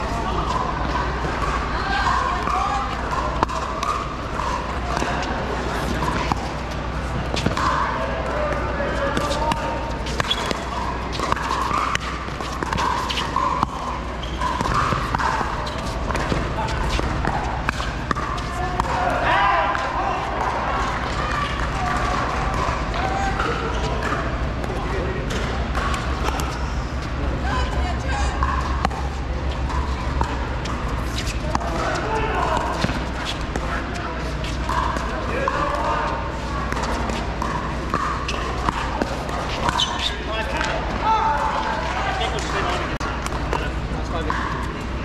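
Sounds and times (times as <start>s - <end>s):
ball bouncing on court: 0.0s - 45.0s
murmur of voices: 0.0s - 45.0s.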